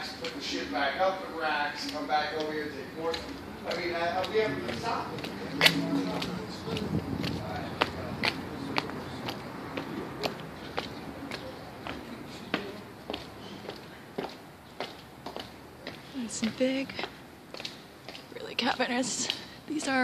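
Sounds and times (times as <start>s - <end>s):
footsteps on concrete: 1.7s - 19.6s.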